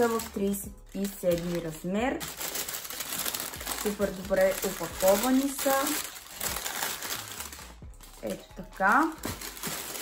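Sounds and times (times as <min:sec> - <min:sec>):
tissue paper rustling and crinkling: 0:00.0 - 0:10.0.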